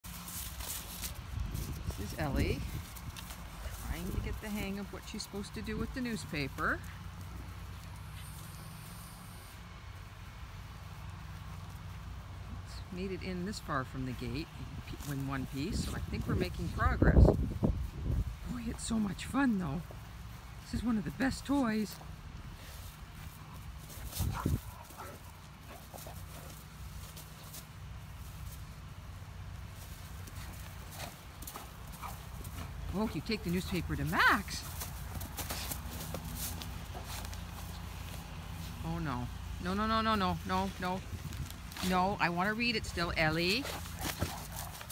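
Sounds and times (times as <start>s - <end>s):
low outdoor rumble: 0.0s - 44.9s.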